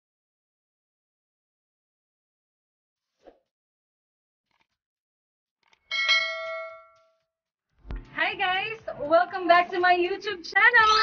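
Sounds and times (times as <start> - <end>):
bell ding sound effect: 5.9 - 7.0.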